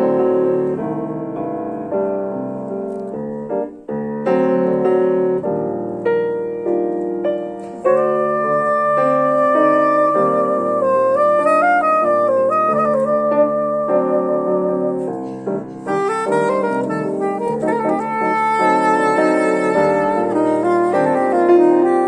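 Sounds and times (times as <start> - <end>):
piano chords: 0.0 - 22.0
soprano saxophone melody: 7.8 - 22.0.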